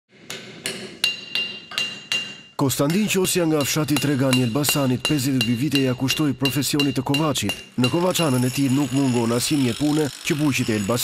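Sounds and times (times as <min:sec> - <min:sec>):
hammer striking metal on anvil: 0:00.1 - 0:10.6.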